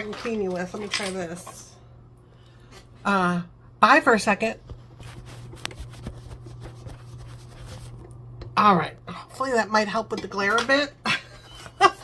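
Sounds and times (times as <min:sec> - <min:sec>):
low steady hum: 0:00.0 - 0:12.0
cloth rubbing on microphone: 0:04.7 - 0:08.0.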